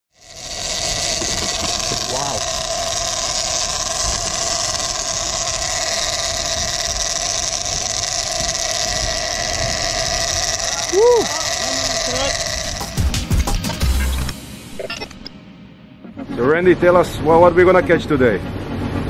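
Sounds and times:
boat engines running: 0.1 - 15.2
wake water rushing: 0.2 - 14.3
wind on microphone: 0.3 - 13.8.

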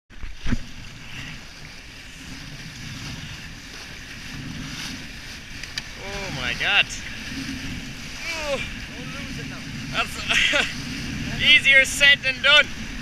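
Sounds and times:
water rushing along hull: 0.1 - 13.0
wind noise on microphone: 0.1 - 13.0.

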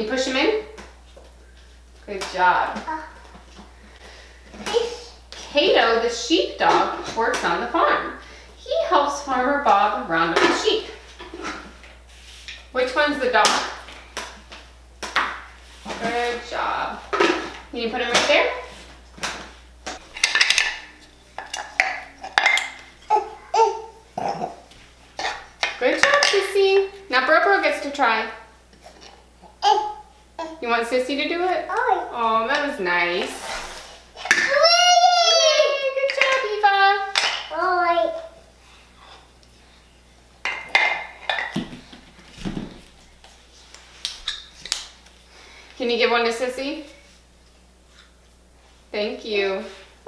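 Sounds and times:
toddler vocal sounds: 21.8 - 25.4, 28.9 - 30.6, 34.2 - 35.9
toys knocking and rustling: 34.2 - 37.5, 40.5 - 42.9.

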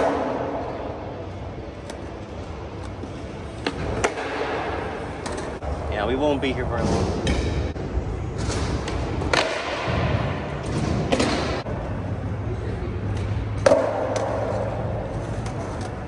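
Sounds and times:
skateboard impacts echoing: 0.0 - 1.0, 3.5 - 5.7, 8.4 - 11.7, 13.4 - 16.0
skateboard wheels rolling on concrete: 13.5 - 16.0.

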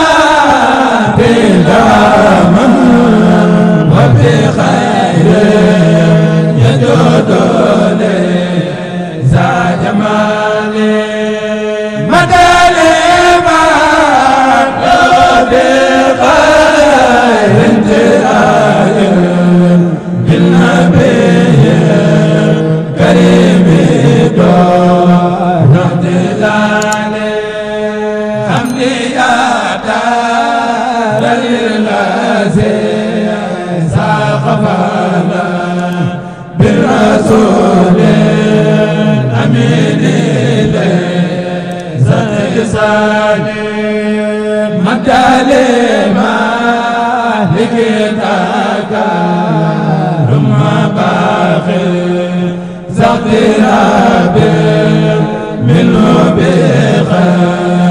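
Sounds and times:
man chanting devotional song: 0.0 - 57.9.

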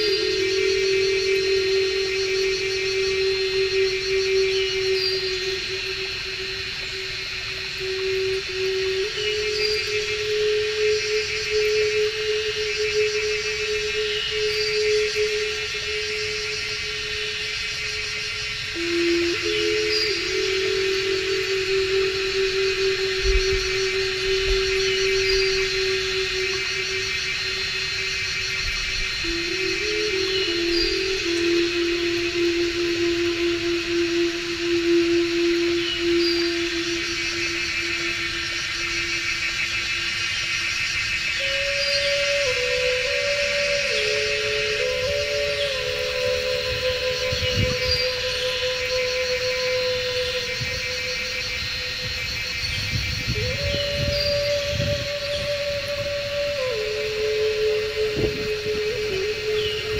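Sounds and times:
insect chorus: 0.0 - 59.9
slow music of low held notes: 0.0 - 59.9.

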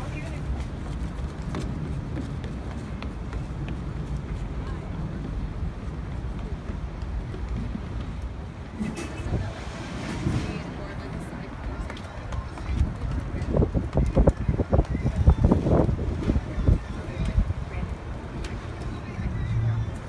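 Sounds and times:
faint voices: 0.0 - 20.0
wind on microphone: 8.6 - 18.4.

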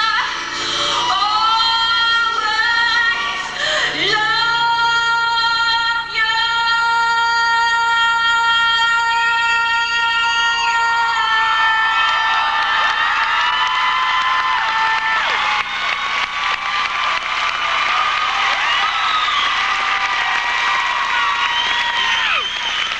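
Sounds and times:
loud applause: 9.4 - 22.9
audience cheering and whooping: 10.8 - 22.9.

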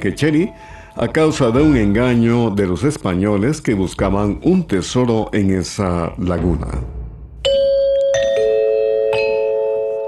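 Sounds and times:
bell-like chime notes: 7.4 - 10.0.

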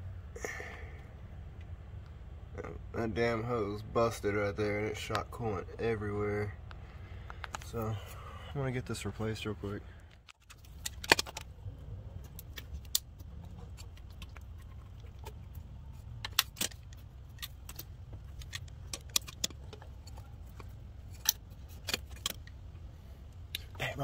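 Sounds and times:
low hum: 0.0 - 24.0
pliers and metal clamps clinking: 15.5 - 22.5.

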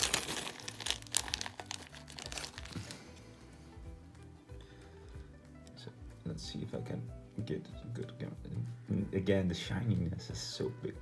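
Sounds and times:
plastic bag crinkling: 0.0 - 3.1
soft background music: 0.0 - 11.0.

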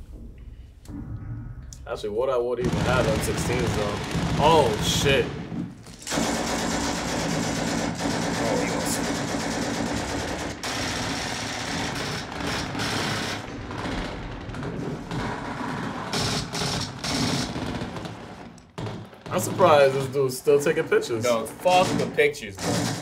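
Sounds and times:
rapid automatic gunfire: 2.6 - 23.0.

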